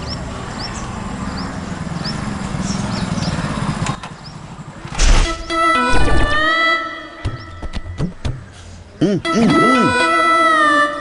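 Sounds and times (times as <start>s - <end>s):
birds chirping: 0.0s - 10.8s
music with held tones: 9.2s - 11.0s.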